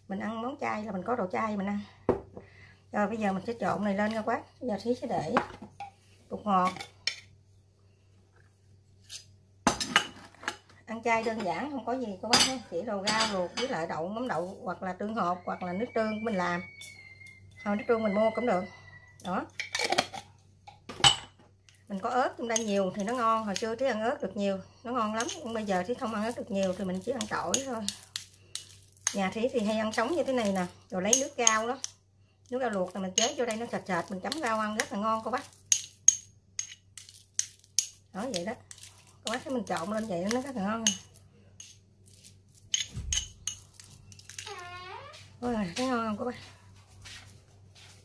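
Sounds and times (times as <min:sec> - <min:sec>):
metal spoon clinking glass bowl: 0:22.3 - 0:23.8, 0:25.0 - 0:32.0, 0:32.8 - 0:44.5.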